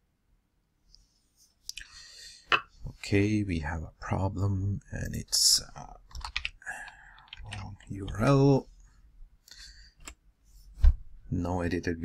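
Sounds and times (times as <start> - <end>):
keyboard and mouse clicks: 6.1 - 8.3.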